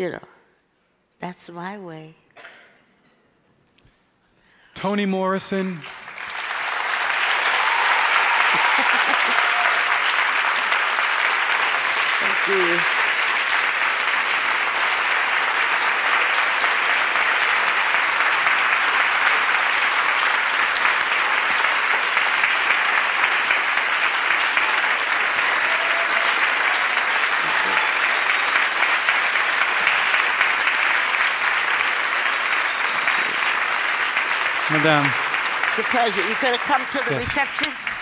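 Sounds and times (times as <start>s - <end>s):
large audience applauding: 5.1s - 38.0s.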